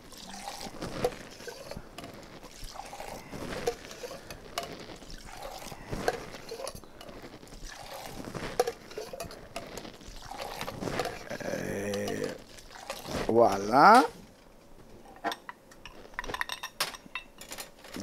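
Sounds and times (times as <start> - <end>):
liquid pouring between tins: 0.0 - 14.2
metal tins clinking: 15.2 - 18.0.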